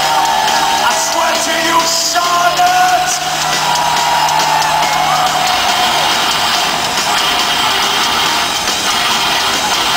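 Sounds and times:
live metal band playing: 0.0s - 9.9s.

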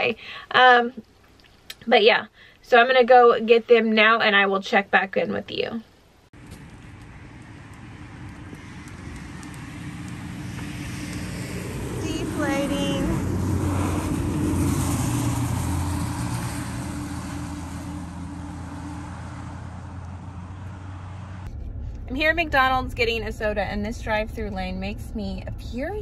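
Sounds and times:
vehicle passing: 6.4s - 26.0s
steady low hum: 19.6s - 26.0s.

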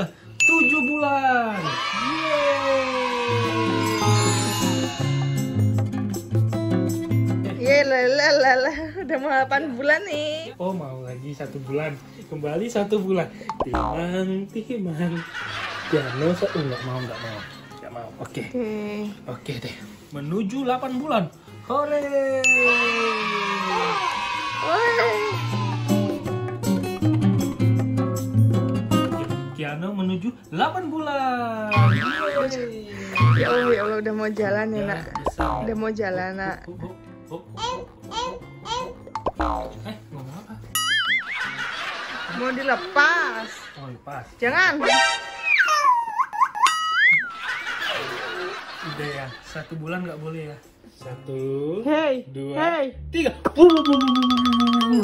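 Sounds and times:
bright chime: 0.4s - 1.4s, 3.9s - 5.5s, 53.6s - 55.0s
cartoon sliding-pitch sound effects: 40.8s - 41.4s, 44.9s - 46.0s, 53.6s - 55.0s
tone sliding downward: 53.6s - 55.0s.

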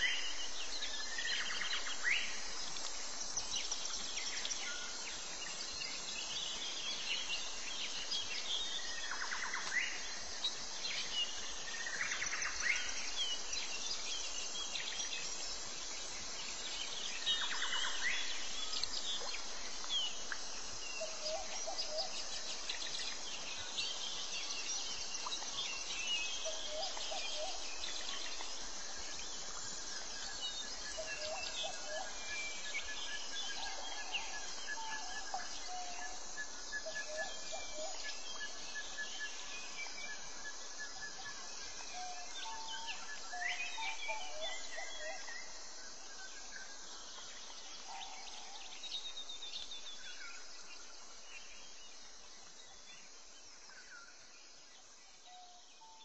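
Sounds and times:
high insect drone: 0.0s - 56.0s.

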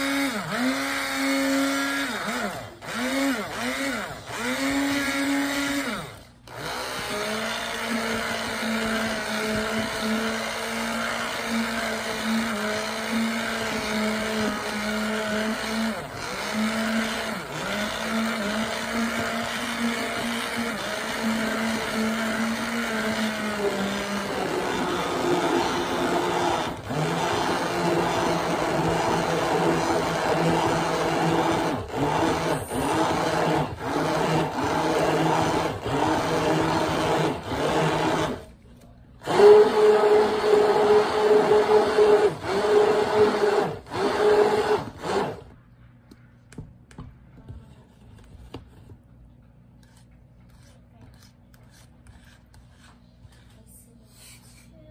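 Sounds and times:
electric stick blender whine: 0.0s - 38.6s, 39.2s - 45.6s.

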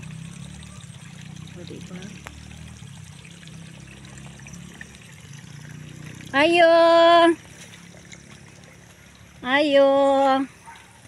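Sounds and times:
water running in a channel: 0.0s - 11.0s.

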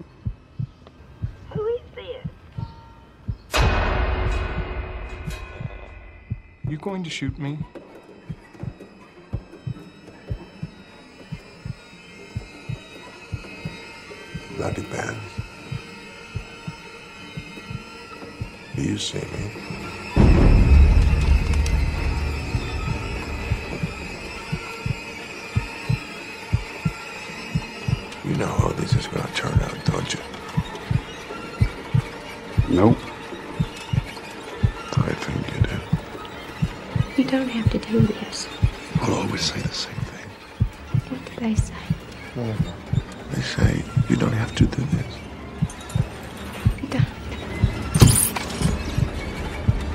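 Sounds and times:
heartbeat thumps: 0.0s - 33.0s, 33.6s - 49.9s
high eerie drone: 0.0s - 49.9s.

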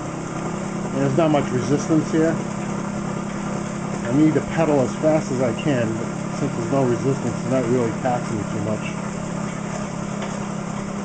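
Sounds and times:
alternator mechanical whir: 0.0s - 11.0s.

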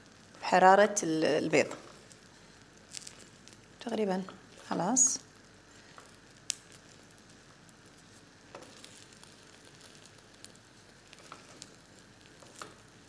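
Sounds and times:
egg sizzling in oil: 1.6s - 13.0s.

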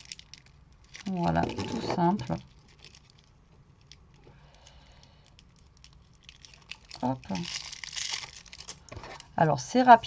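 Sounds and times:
hands rustling ribbon: 0.0s - 9.3s
ribbon crinkling off plastic spool: 0.0s - 9.3s.

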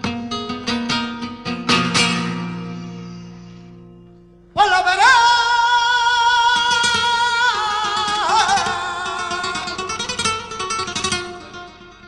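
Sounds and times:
flamenco guitar strokes: 0.0s - 4.4s, 6.5s - 12.0s
man singing long high note: 4.6s - 9.8s.

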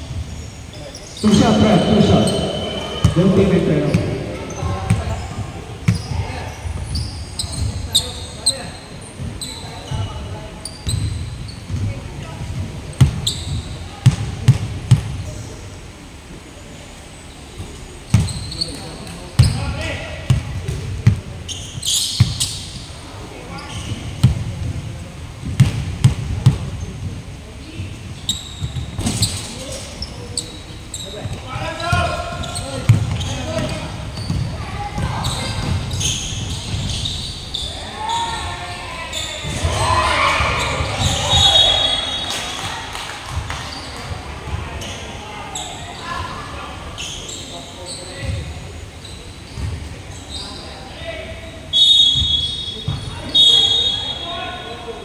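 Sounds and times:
players calling out: 1.0s - 8.1s, 30.0s - 43.0s.

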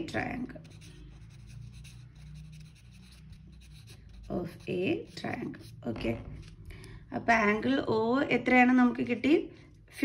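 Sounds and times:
pen scratching on paper: 0.1s - 5.8s.

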